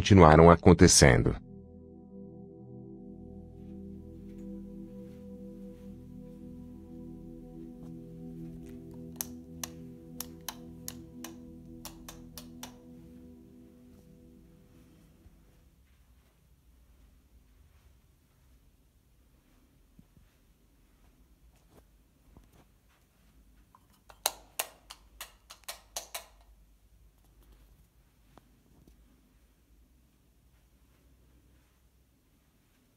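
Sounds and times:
low ambient drone: 0.9s - 16.1s.

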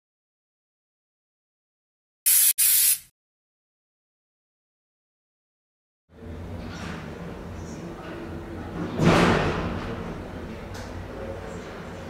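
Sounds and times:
loud hiss bursts: 2.3s - 3.1s.

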